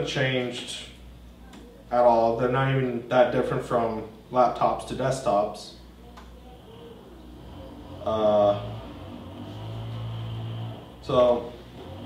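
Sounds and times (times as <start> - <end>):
low room tone hum: 0.0 - 12.0.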